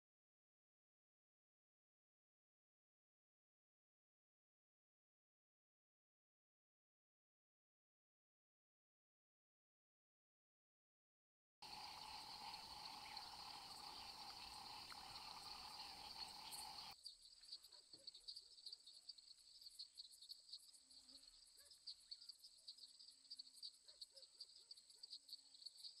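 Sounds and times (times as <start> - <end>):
insects chirring: 11.6 - 26.0.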